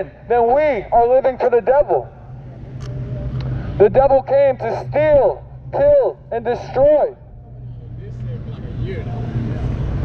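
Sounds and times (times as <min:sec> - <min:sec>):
car approaching: 0:00.0 - 0:10.0
constant low hum: 0:00.0 - 0:10.0.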